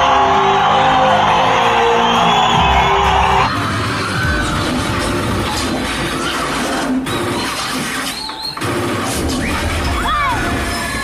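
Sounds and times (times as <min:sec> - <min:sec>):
audience whistling: 0:00.0 - 0:09.7
action film soundtrack: 0:00.0 - 0:11.0.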